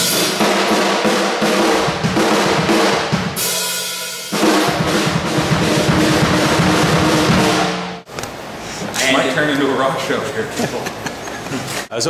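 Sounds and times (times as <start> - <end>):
drum kit played fast: 0.0 - 8.1.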